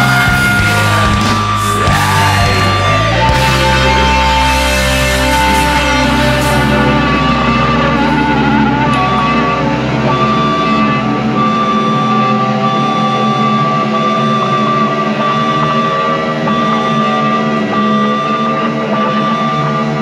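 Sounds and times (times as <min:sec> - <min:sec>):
distorted electric guitar: 0:00.0 - 0:20.0.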